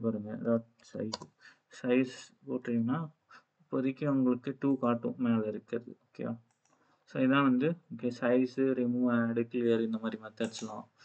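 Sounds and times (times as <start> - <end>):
man speaking: 0.0 - 1.2, 1.8 - 3.1, 3.8 - 6.4, 7.1 - 10.9.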